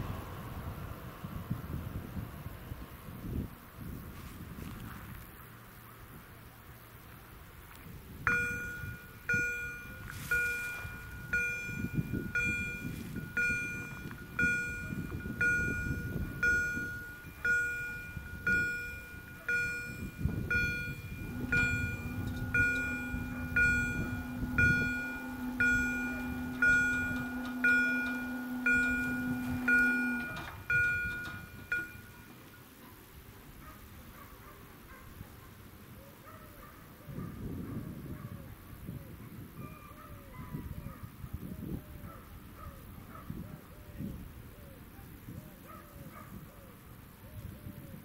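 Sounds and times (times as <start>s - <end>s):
barrier motor humming: 7.1s - 32.5s
level crossing bell ringing: 8.3s - 32.5s.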